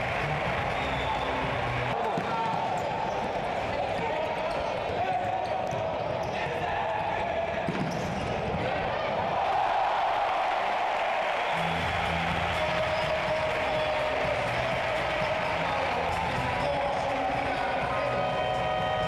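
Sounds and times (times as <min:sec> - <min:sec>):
crowd noise echoing in hall: 0:00.0 - 0:19.0.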